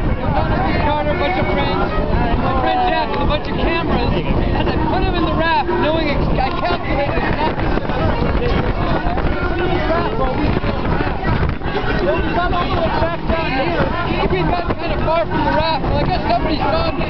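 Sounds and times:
people talking indistinctly: 0.0s - 17.0s
water rushing past boat: 0.0s - 17.0s
wind rushing: 0.0s - 17.0s.

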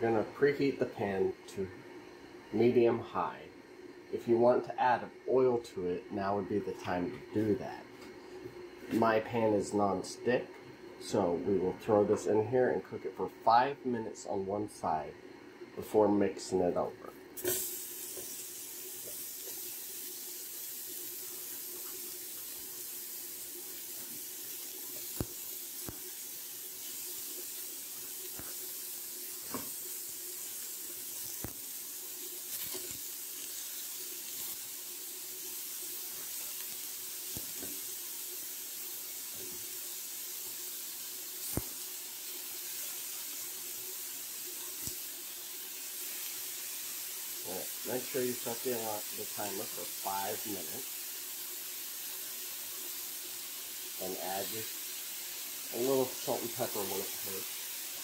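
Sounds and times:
meat sizzling in a skillet: 17.4s - 58.0s.

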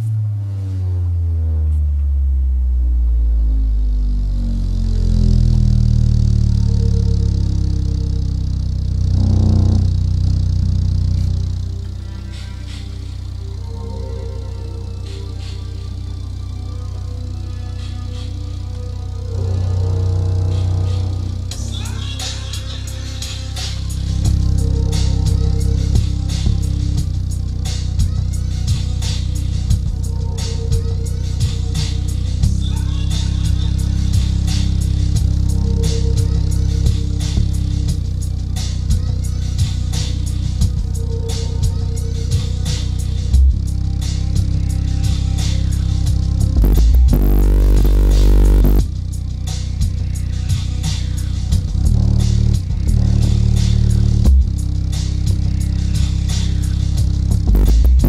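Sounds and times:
bass-heavy music through subwoofer: 0.0s - 58.0s.

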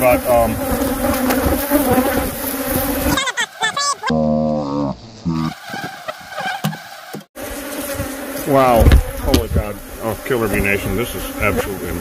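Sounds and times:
man's wordless voice: 0.0s - 0.7s, 8.5s - 12.0s
bees buzzing: 0.0s - 12.0s.

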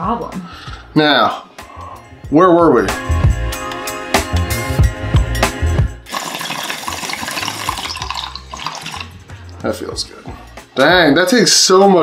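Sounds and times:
water bubbling in a bong: 6.1s - 9.2s.

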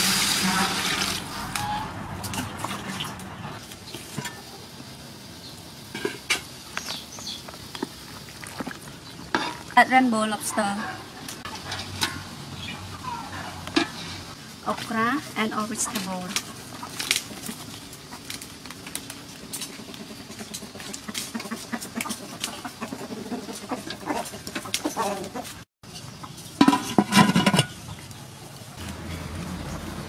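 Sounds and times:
chickens clucking: 6.7s - 14.8s, 15.5s - 28.2s.

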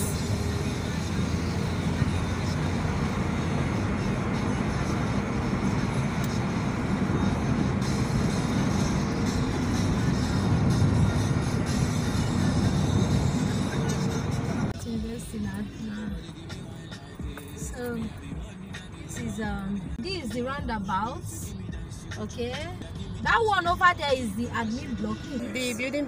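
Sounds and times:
car road and engine noise: 0.0s - 26.0s
music playing: 0.0s - 26.0s.

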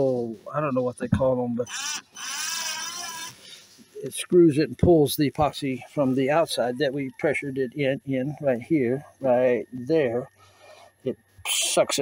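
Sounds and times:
cordless drill whining: 1.6s - 3.6s.

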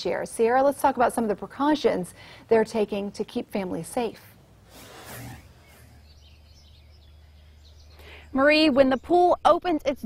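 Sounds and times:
low steady hum: 1.2s - 9.8s
birds chirping: 4.1s - 10.0s.

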